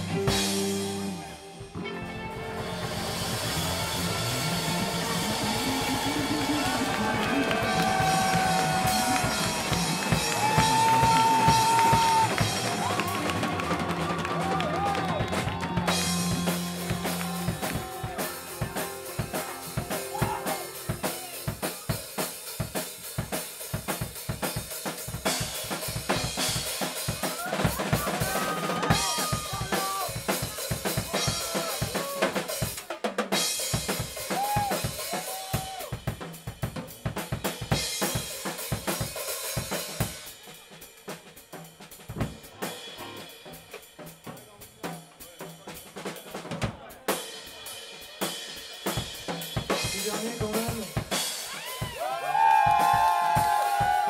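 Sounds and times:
pop band playing: 0:00.0 - 0:54.0.

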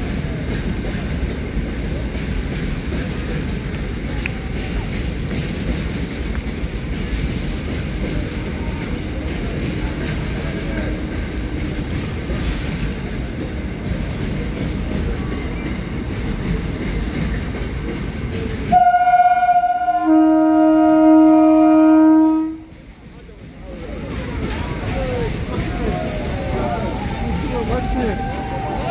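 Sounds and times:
low rumble of trains: 0:00.0 - 0:28.9
train horn chord: 0:18.7 - 0:22.7.

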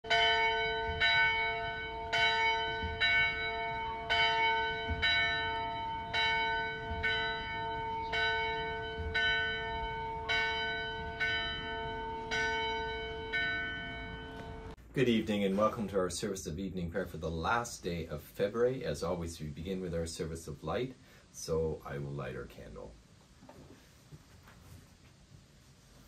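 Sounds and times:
church bell tolling: 0:00.0 - 0:14.8.

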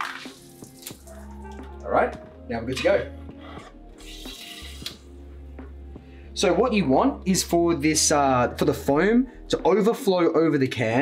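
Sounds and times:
quiet background music: 0:00.0 - 0:11.0.

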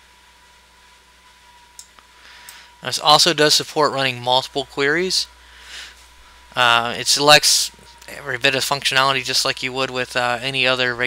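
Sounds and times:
faint high whine: 0:00.0 - 0:11.0
low mains hum: 0:00.0 - 0:11.0
steady hiss: 0:01.7 - 0:11.0.

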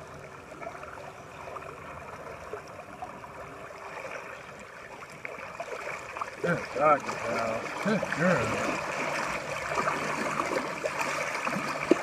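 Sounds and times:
dog paddling through water: 0:00.0 - 0:12.0
water lapping and sloshing: 0:00.0 - 0:12.0.

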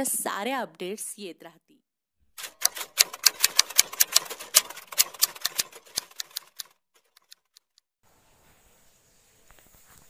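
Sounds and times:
typewriter key clacks: 0:02.4 - 0:07.5.

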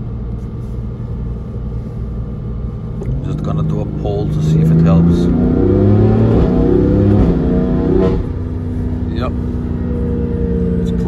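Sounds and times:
car engine accelerating: 0:02.9 - 0:11.0.

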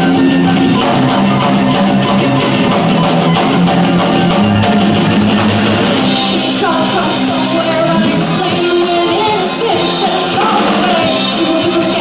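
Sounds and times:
drum kit steady beat: 0:00.0 - 0:12.0
guitars: 0:00.0 - 0:12.0.

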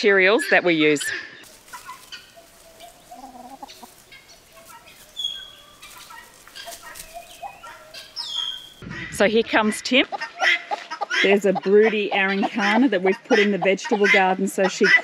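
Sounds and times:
hens clucking softly: 0:01.0 - 0:09.1, 0:10.0 - 0:15.0
high whistled bird calls: 0:05.2 - 0:05.8, 0:07.0 - 0:08.8.

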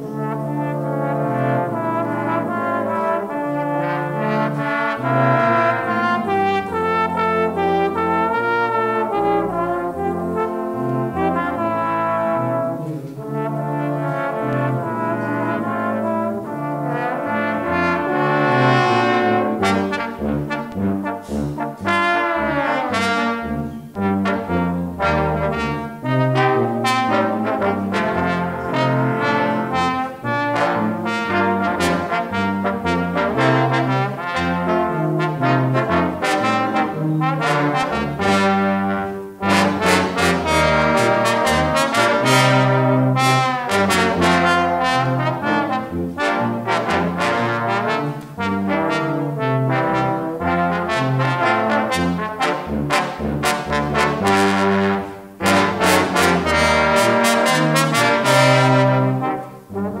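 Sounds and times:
brass ensemble playing: 0:00.0 - 1:00.0.

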